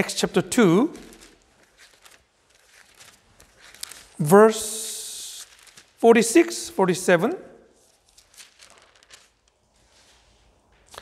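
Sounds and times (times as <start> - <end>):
pages being turned: 0.8 - 4.2, 5.3 - 6.1, 7.8 - 11.0.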